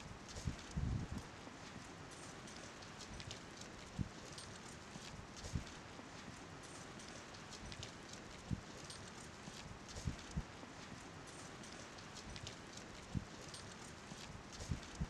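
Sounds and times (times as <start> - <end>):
faint steady hiss: 0.0 - 15.0.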